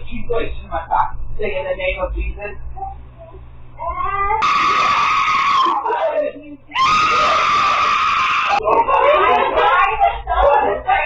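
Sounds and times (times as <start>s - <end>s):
woman screaming: 3.9s - 8.6s.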